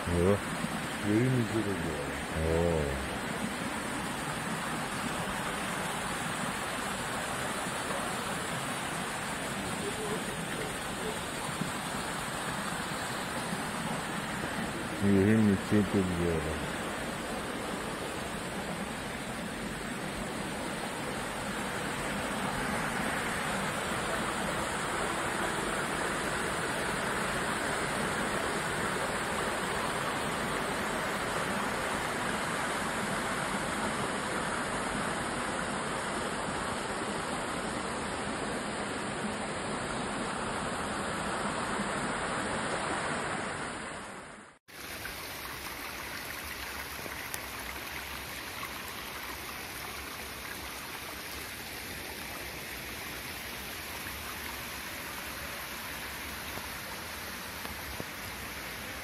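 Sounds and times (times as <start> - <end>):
stream rushing over rocks: 0.0 - 59.0.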